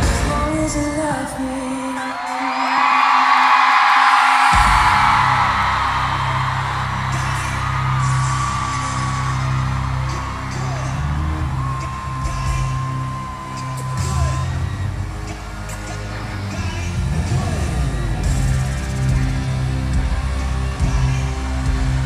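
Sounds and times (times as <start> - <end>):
bass-heavy track over pa: 0.0 - 1.6, 4.5 - 22.0
crowd screaming and cheering: 0.0 - 22.0.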